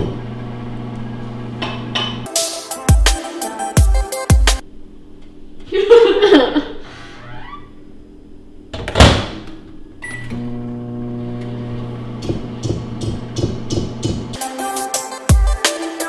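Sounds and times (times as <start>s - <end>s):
microwave humming: 0.0s - 2.3s, 4.6s - 14.4s
background music with a beat: 2.3s - 4.6s, 12.6s - 16.0s
microwave beep: 9.9s - 10.6s.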